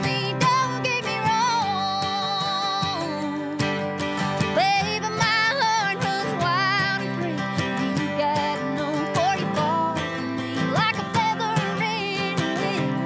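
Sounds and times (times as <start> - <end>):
strummed acoustic guitars: 0.0 - 13.0
woman singing country song: 0.0 - 13.0.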